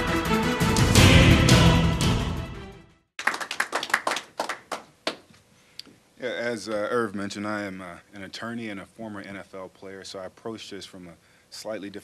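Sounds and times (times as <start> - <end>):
theme music: 0.0 - 3.1
people clapping: 3.2 - 5.3.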